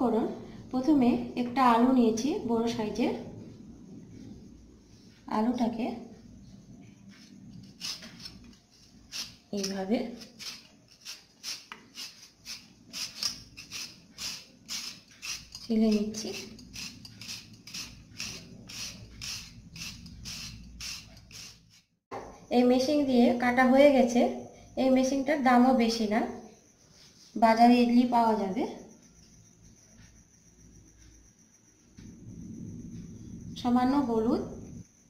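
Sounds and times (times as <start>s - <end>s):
potato shredded on metal grater: 7.6s - 8.5s, 9.1s - 21.8s.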